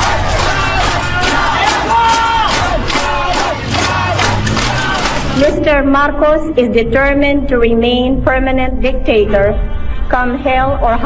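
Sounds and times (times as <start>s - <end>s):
crowd shouting: 0.0s - 5.6s.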